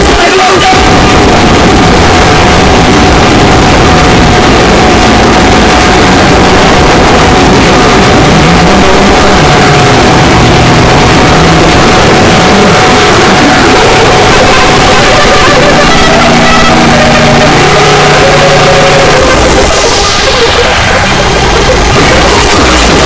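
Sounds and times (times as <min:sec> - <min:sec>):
distorted electronic dance music: 0:00.0 - 0:23.0
steady high tone: 0:00.0 - 0:23.0.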